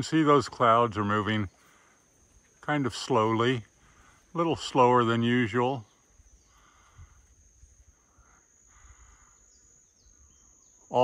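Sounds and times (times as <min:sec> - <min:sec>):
man speaking: 0:00.0 - 0:01.6, 0:02.6 - 0:05.9
high-pitched insect trill: 0:00.0 - 0:11.0
low wind rumble: 0:06.0 - 0:10.4.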